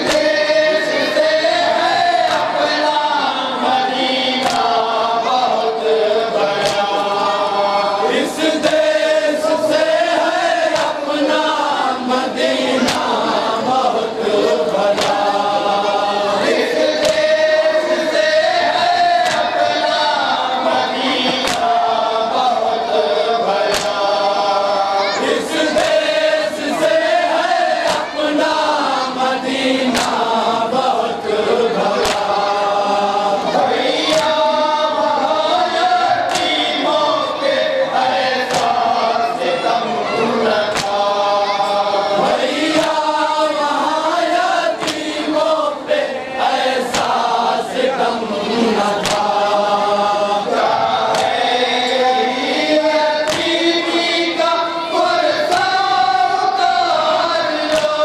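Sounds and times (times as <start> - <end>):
chest-beating slaps: 0.0 - 0.5, 2.2 - 3.0, 3.7 - 5.6, 6.4 - 11.4, 12.4 - 13.3, 14.7 - 15.8, 16.4 - 22.4, 23.5 - 24.5, 27.3 - 31.1, 31.8 - 32.9, 33.7 - 34.8, 35.7 - 37.2, 38.0 - 39.1, 40.5 - 45.5, 46.8 - 47.6, 48.8 - 50.0, 50.6 - 54.4, 55.4 - 56.7, 57.6 - 58.0
men chanting in unison: 0.0 - 58.0.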